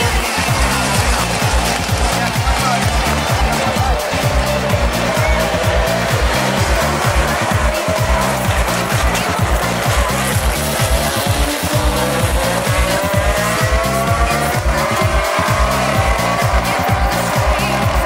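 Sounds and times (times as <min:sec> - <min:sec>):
background music with steady beat: 0:00.0 - 0:18.0
race cars accelerating: 0:00.0 - 0:18.0.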